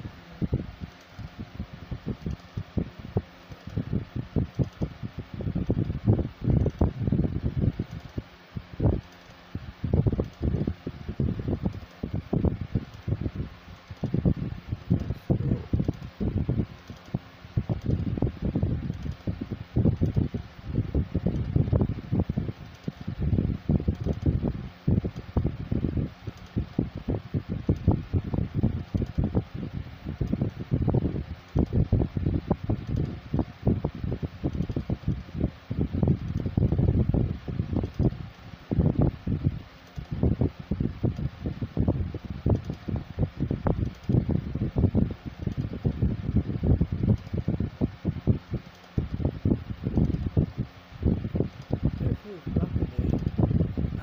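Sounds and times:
fan air buffeting microphone: 0.0 - 54.0.

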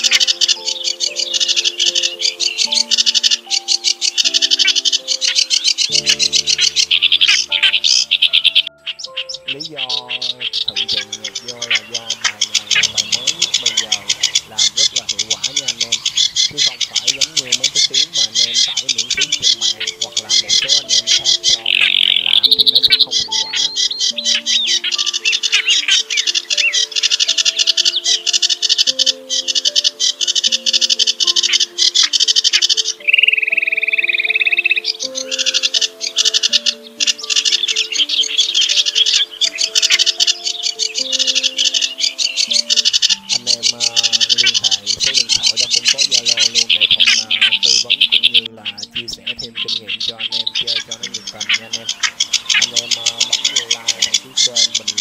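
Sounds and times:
gliding bird call: 0.0 - 55.0
slow background music: 0.0 - 55.0
songbirds chattering: 0.0 - 55.0.

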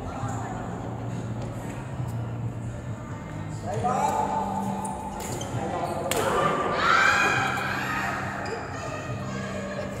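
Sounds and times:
players exclaiming in echoing hall: 3.7 - 10.0.

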